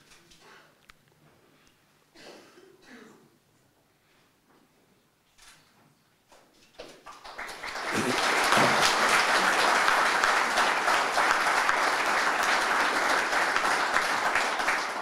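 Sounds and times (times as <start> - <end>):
audience applauding: 7.0 - 15.0.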